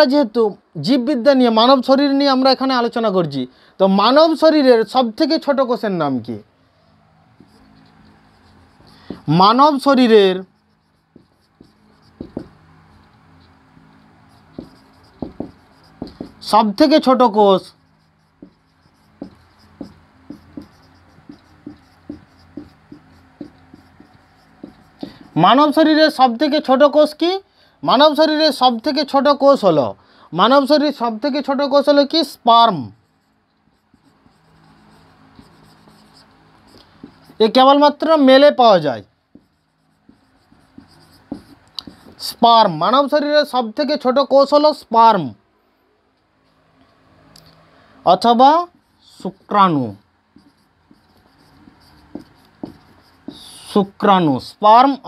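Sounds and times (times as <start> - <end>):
marker pen writing on whiteboard: 6.7 - 27.2, 30.5 - 43.6, 46.5 - 55.0.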